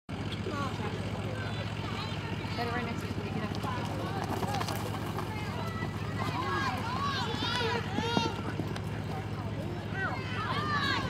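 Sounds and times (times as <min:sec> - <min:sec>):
faint voices talking: 0:00.1 - 0:11.0.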